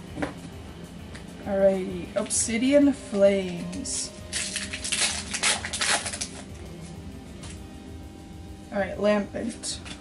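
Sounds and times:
soft background music: 0.0 - 10.0
foil wrapper crinkling and tearing: 4.2 - 6.6.

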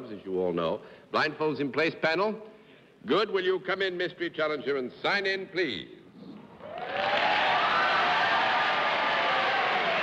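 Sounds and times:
audience applauding: 6.6 - 10.0.

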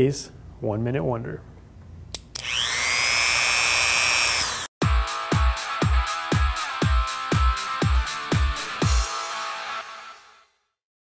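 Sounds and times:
rotary tool high-pitched whine: 2.4 - 4.7
electronic music with heavy beat: 4.8 - 10.1.

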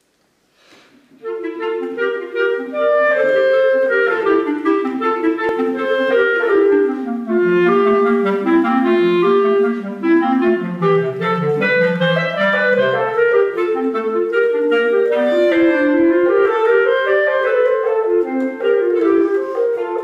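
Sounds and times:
clarinet: 1.1 - 20.0
basset horn: 1.2 - 20.0.

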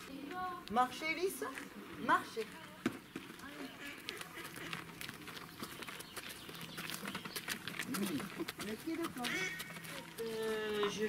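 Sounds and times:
footsteps on gravel: 0.0 - 11.0
donkey hooves on gravel: 0.1 - 11.0.

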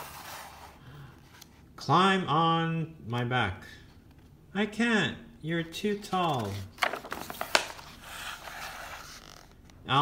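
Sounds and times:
paper rustling: 5.8 - 9.6
paper page turning: 5.9 - 9.7.

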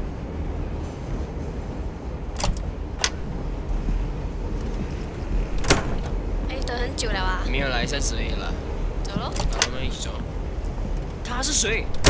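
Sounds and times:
steady low rumble: 0.0 - 12.0
sharp door clicks: 2.4 - 3.3, 5.5 - 6.2, 9.3 - 9.9.

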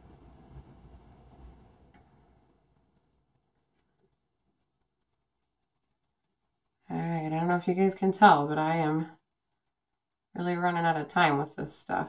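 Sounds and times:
faint even ticking: 0.0 - 12.0.

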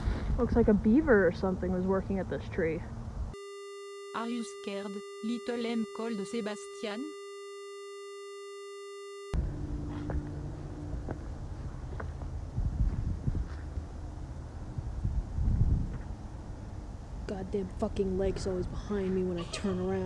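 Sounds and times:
wind rumble on microphone: 0.0 - 3.4, 9.4 - 19.2
buzzy electronic tone: 3.4 - 10.2.

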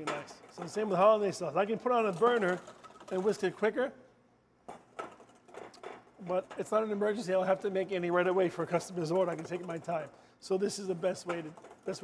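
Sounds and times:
whisk clicking against metal bowl: 8.2 - 10.1.

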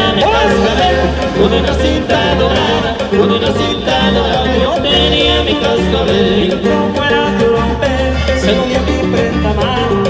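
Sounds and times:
live band playing dance music: 0.0 - 10.0
repeating bass line: 0.0 - 10.0.

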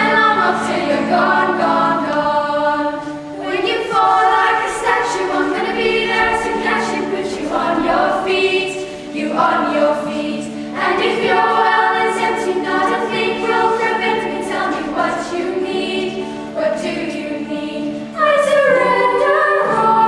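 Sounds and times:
girls singing in harmony: 0.0 - 20.0.

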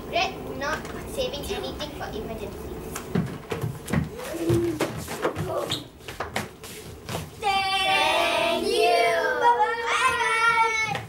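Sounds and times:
footsteps on wooden stage: 2.9 - 7.5
children calling out: 7.9 - 11.0.

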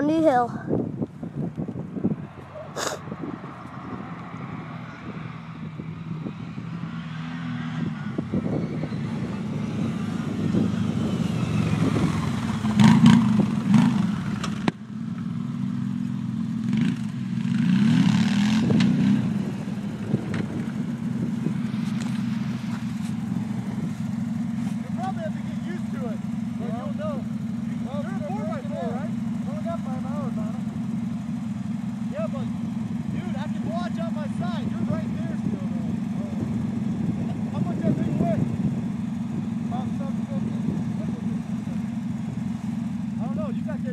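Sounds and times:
atv engines idling: 0.0 - 6.9, 7.7 - 43.9.

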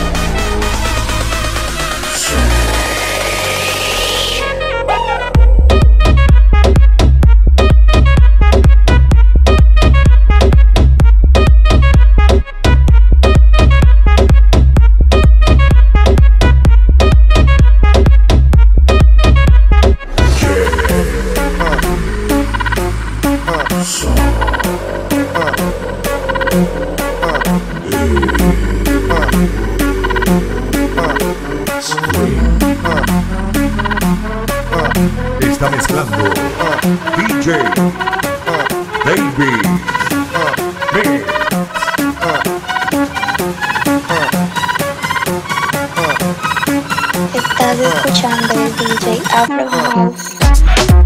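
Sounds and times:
electronic dance music: 0.0 - 51.0.

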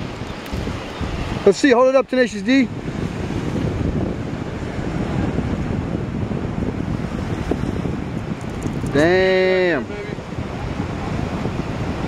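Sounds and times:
rushing water: 0.0 - 12.0
wind buffeting microphone: 0.0 - 12.0.

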